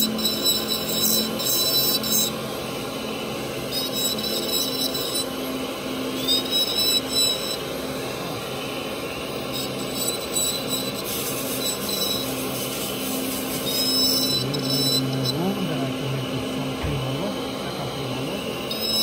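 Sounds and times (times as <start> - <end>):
dental handpiece grinding whine: 0.0 - 19.0.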